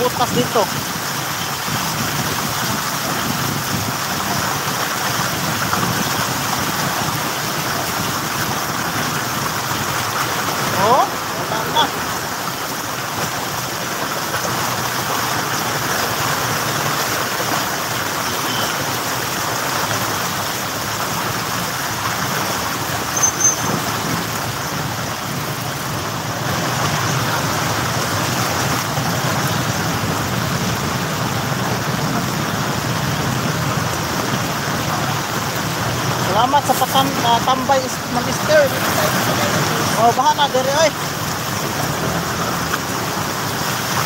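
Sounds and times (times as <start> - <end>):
cars splashing through water: 0.0 - 44.0
engine and tyre noise: 0.0 - 44.0
high squeak: 23.1 - 23.9.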